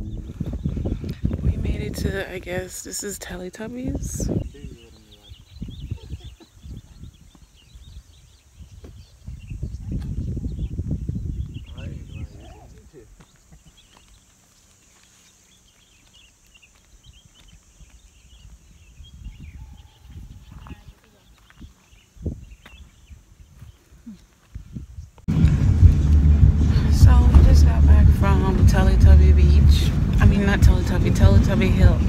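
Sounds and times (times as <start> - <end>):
wind gusts on microphone: 0.0 - 13.8, 16.9 - 32.0
car engine rumble inside cabin: 25.3 - 32.0
road noise: 25.3 - 32.0.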